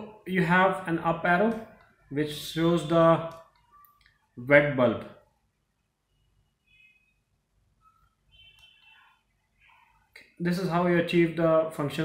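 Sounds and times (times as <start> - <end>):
faint high-pitched sound: 6.0 - 10.1.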